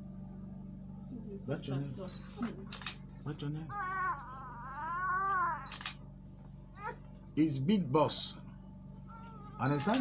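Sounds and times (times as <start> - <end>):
baby crying: 3.7 - 5.7, 6.8 - 7.1, 9.1 - 10.0.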